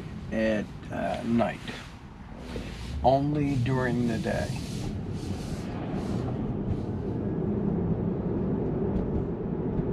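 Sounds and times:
road and tyre noise in car: 0.0s - 9.9s.

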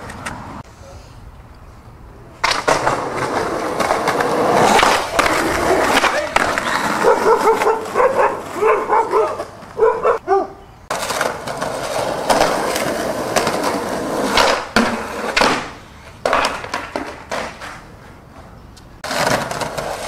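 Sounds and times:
skateboard rolling on rough pavement: 2.2s - 10.2s, 10.9s - 20.0s
skateboard clacks: 2.4s - 9.8s, 10.9s - 20.0s
small dog barking: 7.0s - 10.6s.

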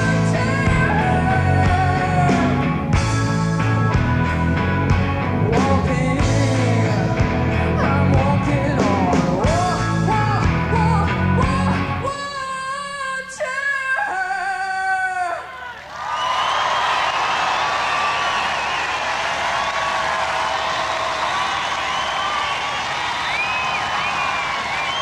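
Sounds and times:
crowd cheering and whistling: 15.5s - 25.0s.

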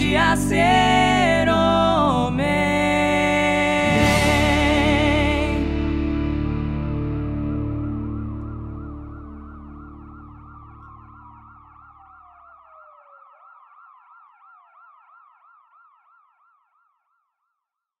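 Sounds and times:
sustained music chord: 0.0s - 11.5s
emergency siren warbling: 0.0s - 17.0s
siren tone sliding downward: 3.7s - 16.4s.

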